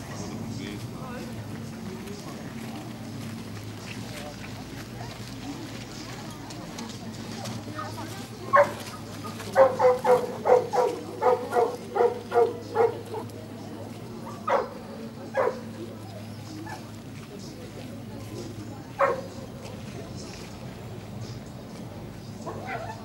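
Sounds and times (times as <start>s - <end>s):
dog barking: 8.5s - 8.8s, 9.5s - 13.3s, 14.3s - 15.7s, 19.0s - 19.3s, 22.5s - 23.0s.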